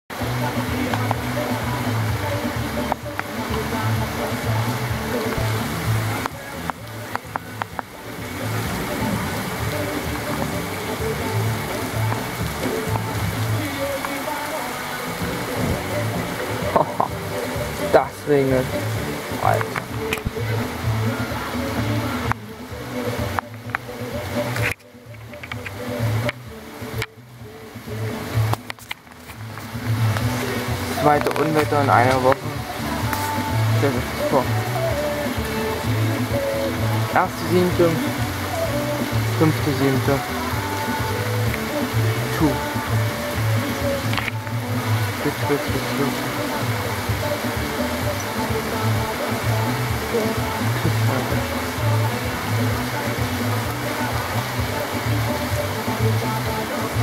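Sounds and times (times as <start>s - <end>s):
heavy rain downpour: 0.1s - 57.0s
music playing: 0.1s - 57.0s
people talking: 0.2s - 23.4s, 30.2s - 57.0s.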